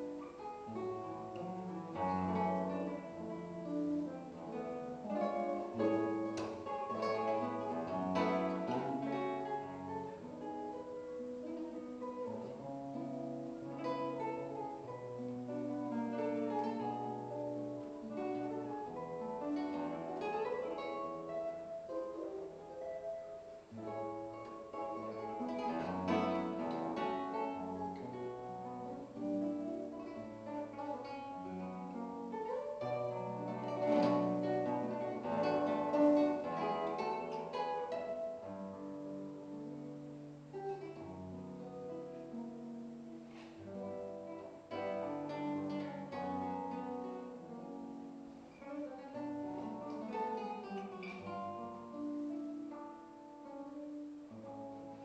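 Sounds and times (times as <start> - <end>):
classical guitar fingerstyle: 0.0 - 55.0.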